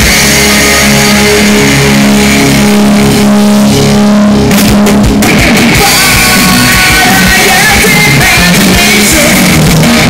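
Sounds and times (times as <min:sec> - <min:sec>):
distorted guitar and bass chord: 0:00.0 - 0:10.0
drumming: 0:00.0 - 0:10.0.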